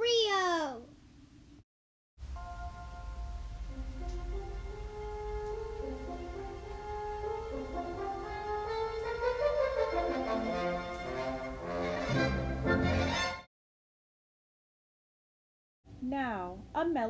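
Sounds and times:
brass instruments slow melody: 0:02.2 - 0:13.5.

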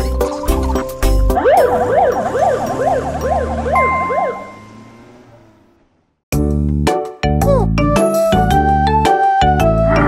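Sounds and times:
low engine hum: 0:01.2 - 0:06.2
ambulance siren wailing: 0:01.3 - 0:05.6, 0:08.0 - 0:10.0.

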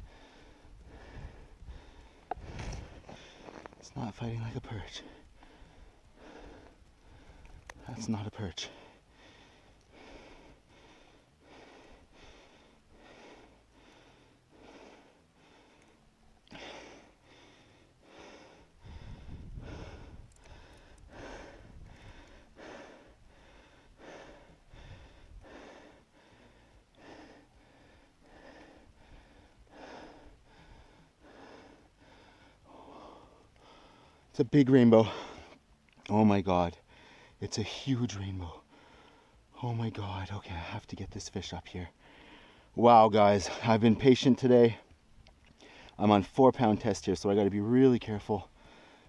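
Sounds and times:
man breathing hard: 0:00.0 - 0:03.7, 0:05.0 - 0:07.8, 0:08.6 - 0:34.3, 0:36.8 - 0:37.4, 0:38.6 - 0:39.5, 0:42.0 - 0:42.8, 0:45.6 - 0:46.0, 0:48.4 - 0:49.0.

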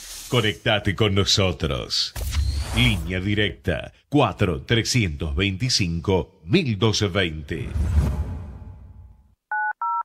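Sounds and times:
touch-tone keypad beeps: 0:09.5 - 0:10.0.

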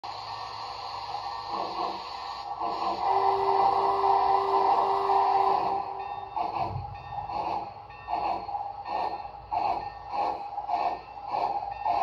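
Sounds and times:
steam hiss through small speaker: 0:00.1 - 0:12.0.

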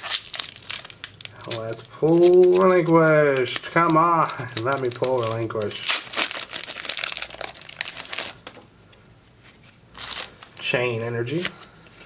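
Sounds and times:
foil pack crinkling and tearing: 0:00.0 - 0:08.6, 0:10.0 - 0:10.7.

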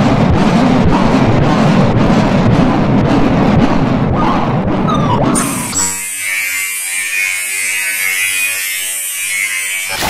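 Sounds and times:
distorted electronic buzzing drone: 0:05.4 - 0:10.0.

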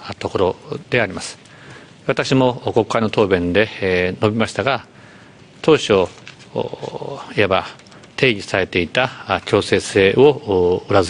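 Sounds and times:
man speaking: 0:00.0 - 0:04.9, 0:05.6 - 0:11.0.

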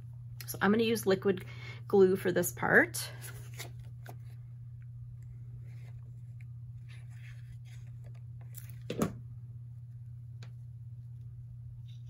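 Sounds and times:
steady low hum: 0:00.0 - 0:12.0
faint paper rustles: 0:03.1 - 0:04.4, 0:05.2 - 0:08.9.

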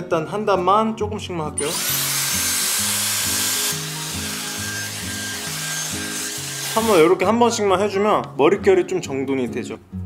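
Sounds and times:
background music with low bass: 0:00.0 - 0:10.0
hot-air styler blowing: 0:01.6 - 0:07.1.

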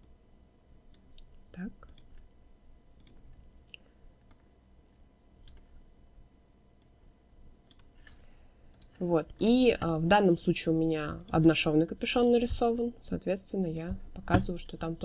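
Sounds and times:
faint mouse clicks: 0:07.6 - 0:09.0.

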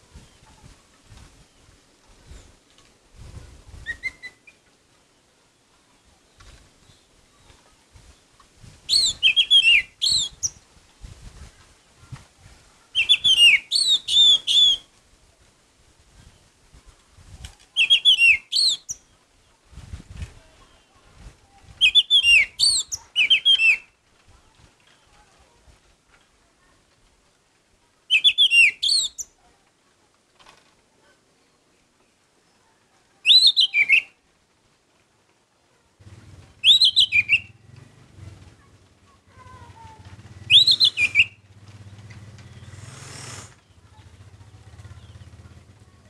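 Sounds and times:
thrush singing whistled notes: 0:08.9 - 0:10.6, 0:13.0 - 0:14.9, 0:17.8 - 0:19.0, 0:21.8 - 0:23.9, 0:28.1 - 0:29.3, 0:33.3 - 0:34.2, 0:36.6 - 0:37.6, 0:40.4 - 0:41.4.

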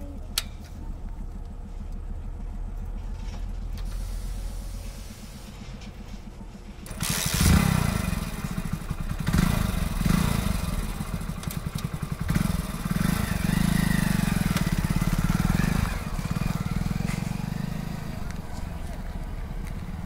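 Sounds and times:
motorcycle engine idling and revving: 0:00.0 - 0:20.0.

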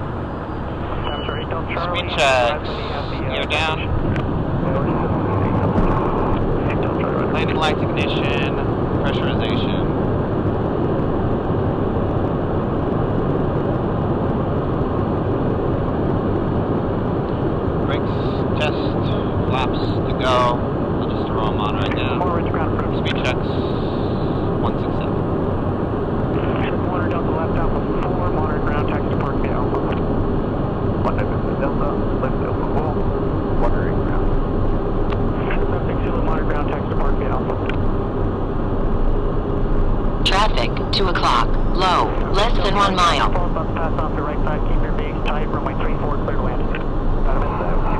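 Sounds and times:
jet engines and airflow rushing hum: 0:00.0 - 0:47.9
steady tone: 0:00.0 - 0:47.9.

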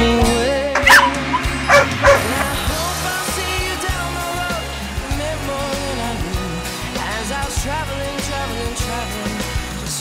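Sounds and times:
background music: 0:00.0 - 0:10.0
dog barking and yipping: 0:00.8 - 0:02.5.

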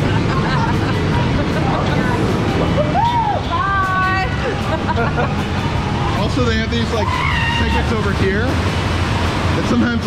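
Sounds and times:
river water rushing: 0:00.9 - 0:10.0.

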